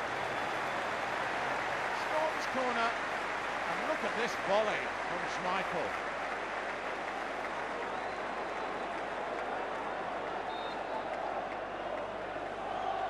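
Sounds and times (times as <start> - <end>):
crowd applause: 0.0 - 13.0
stadium crowd noise: 0.0 - 13.0.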